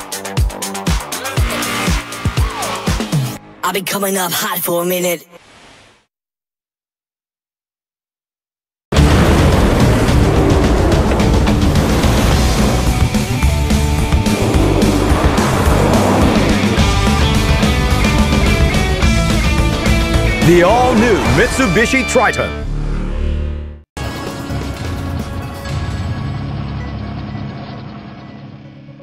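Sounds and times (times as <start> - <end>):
rock music: 0.0 - 3.6, 9.0 - 22.7
truck engine: 9.0 - 28.8.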